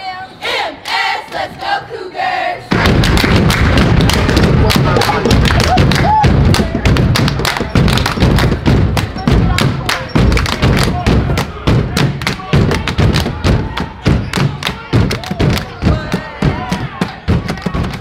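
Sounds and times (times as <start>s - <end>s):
voices chanting: 0.0s - 2.8s, 9.0s - 18.0s
cheer squad clapping: 2.7s - 18.0s
heavy thumps: 2.7s - 18.0s.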